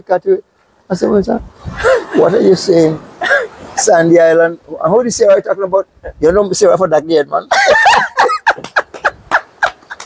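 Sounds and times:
man and woman laughing: 1.8s - 2.4s, 7.5s - 10.0s.

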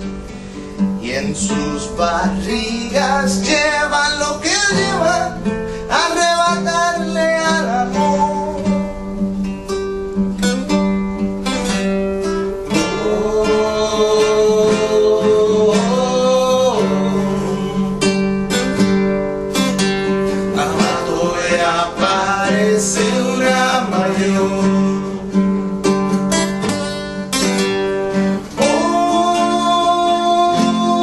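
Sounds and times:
acoustic guitars strumming: 0.0s - 31.0s.

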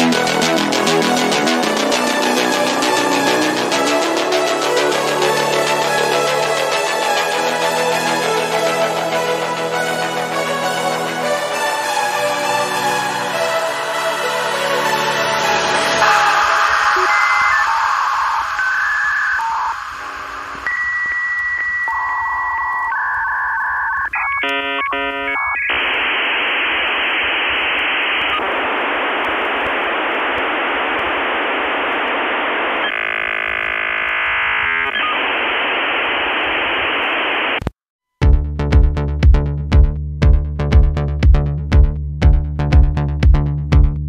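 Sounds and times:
dance music: 0.0s - 17.9s
harsh hiss of data noise: 15.5s - 22.2s
dial-up modem tones: 15.9s - 37.6s.

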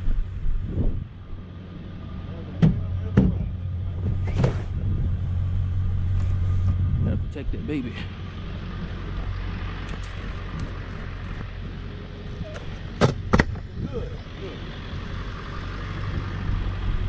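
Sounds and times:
truck engine idling: 0.0s - 17.0s.

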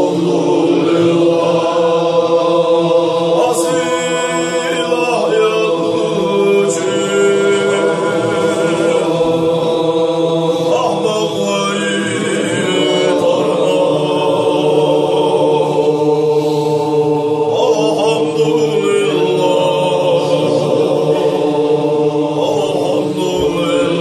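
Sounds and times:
men chanting: 0.0s - 24.0s.

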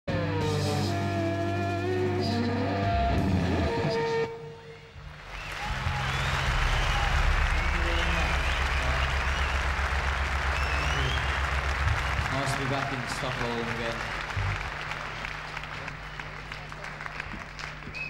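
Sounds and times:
electric guitar and drums: 0.1s - 4.3s, 5.0s - 13.3s
low amplifier hum: 0.1s - 18.0s
audience applause: 5.0s - 18.0s.

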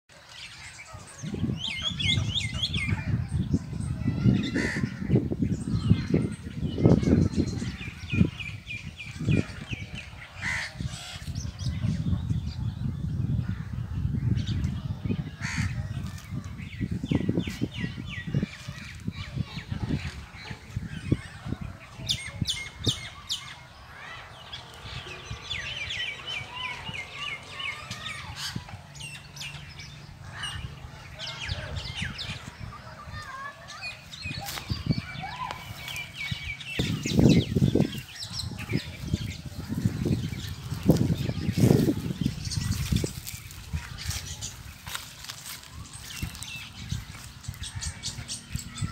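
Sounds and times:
chirping bird calls: 0.1s - 48.9s
wind buffeting microphone: 0.3s - 48.9s.

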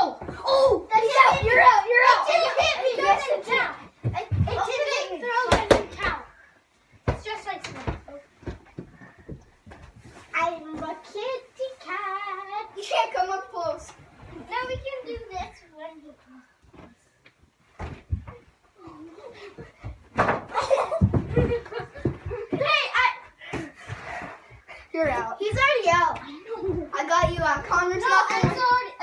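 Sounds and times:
children talking and calling out: 0.0s - 9.4s, 10.0s - 17.0s, 18.3s - 29.0s.

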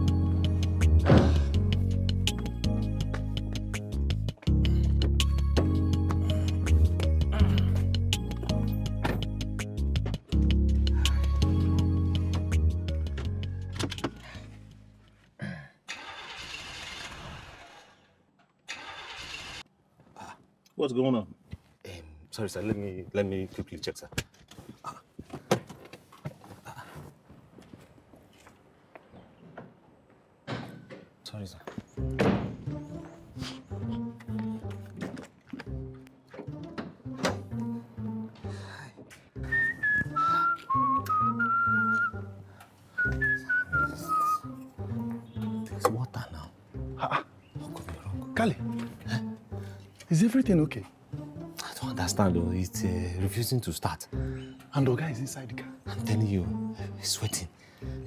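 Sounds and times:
car engine cranking: 15.9s - 19.7s
man whistling a tune: 39.4s - 42.2s, 42.9s - 44.6s.

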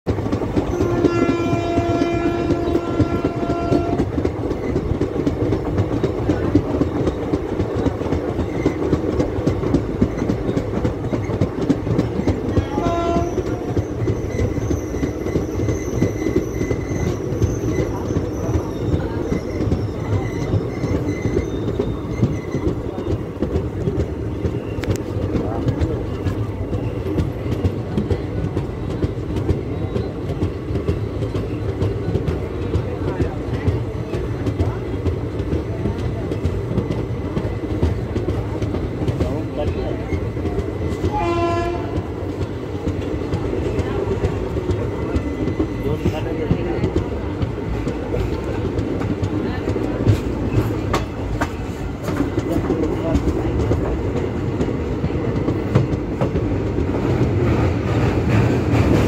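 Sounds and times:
train rumbling on rails: 0.0s - 59.0s
locomotive horn: 0.6s - 4.2s, 12.7s - 13.8s, 41.0s - 42.1s.

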